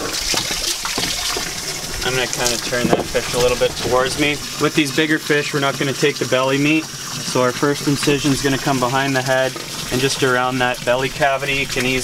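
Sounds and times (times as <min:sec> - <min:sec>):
hose water splashing: 0:00.0 - 0:12.0.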